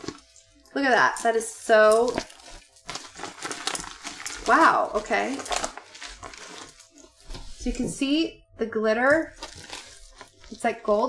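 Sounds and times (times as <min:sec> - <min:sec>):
plastic vinyl crinkling: 0:00.0 - 0:08.2, 0:09.0 - 0:11.0.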